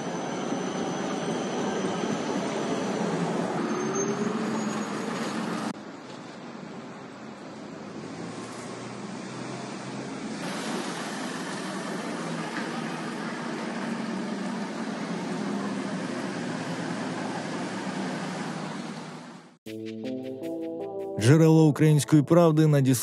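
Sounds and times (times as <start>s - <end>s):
city street traffic noise: 0.0s - 19.6s.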